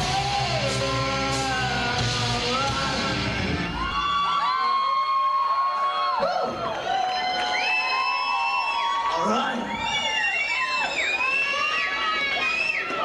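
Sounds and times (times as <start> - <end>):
live rock music: 0.0 - 4.2
crowd cheering: 0.0 - 13.0.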